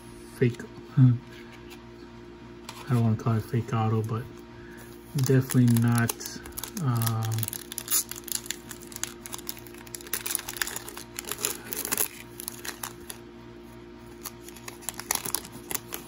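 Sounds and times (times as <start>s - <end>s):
foil wrapper crinkling and tearing: 5.1s - 13.2s, 14.1s - 16.0s.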